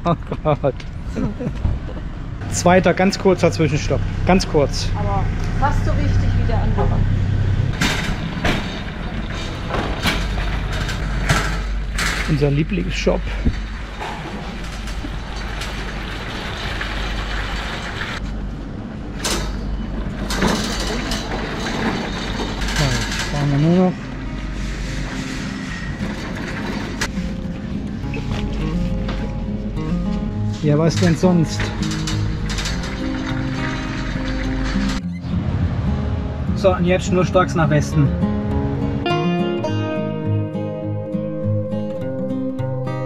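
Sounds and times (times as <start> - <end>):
trolley clattering: 7.7 - 18.2, 19.2 - 29.3, 30.5 - 35.2
shopping trolley rolling and rattling: 7.8 - 18.2, 19.4 - 27.3, 30.8 - 35.0
background music: 23.2 - 43.0.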